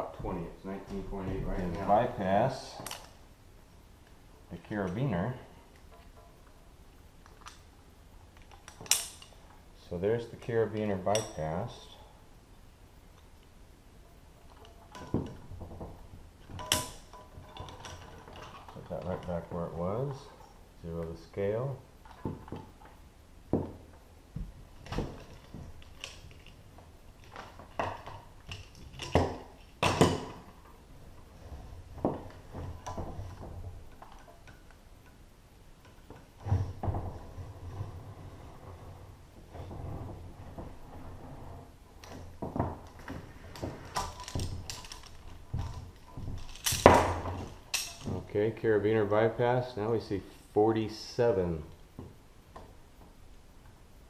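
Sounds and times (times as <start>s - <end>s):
metal carabiner clinking: 8.4s - 9.5s, 16.5s - 19.3s, 43.9s - 48.2s.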